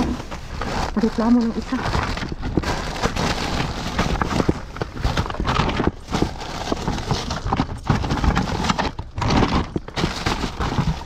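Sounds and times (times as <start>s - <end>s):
hard plastic items clattering: 0.0s - 11.0s
plastic bag rustling: 0.0s - 11.0s.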